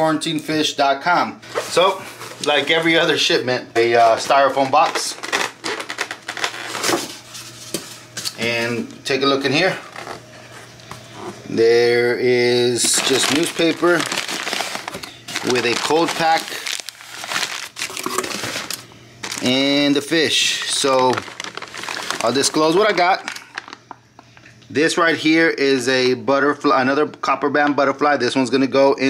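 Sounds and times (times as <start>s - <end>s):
newspaper crumpling and rustling: 1.5s - 8.0s, 12.5s - 24.0s
styrofoam lid squeaking on box: 5.2s - 7.1s.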